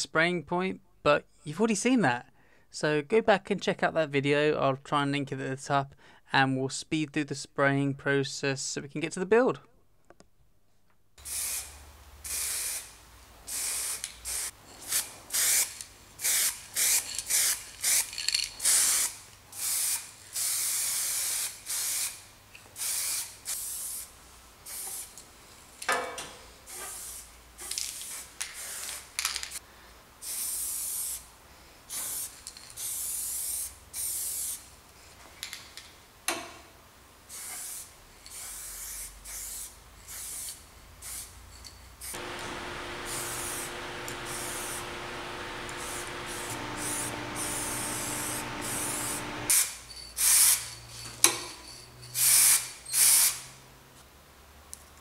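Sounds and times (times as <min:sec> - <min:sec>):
spray paint can hissing: 0:11.2 - 0:22.2, 0:22.8 - 0:24.1, 0:30.2 - 0:31.2, 0:31.9 - 0:34.6, 0:37.3 - 0:41.3, 0:43.0 - 0:44.8, 0:45.8 - 0:50.7, 0:52.2 - 0:53.5
steady hum with held tones: 0:42.2 - 0:49.5.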